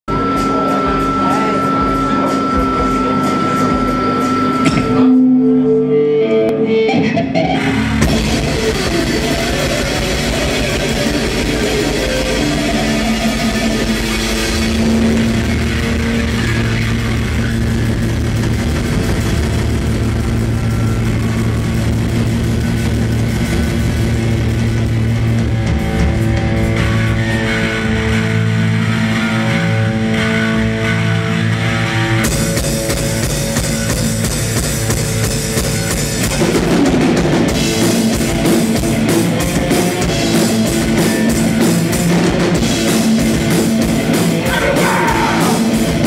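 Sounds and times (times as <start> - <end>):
distorted electric guitars: 0.0 - 46.0
steady high tone: 0.1 - 18.2
noise rock band playing: 0.1 - 46.0.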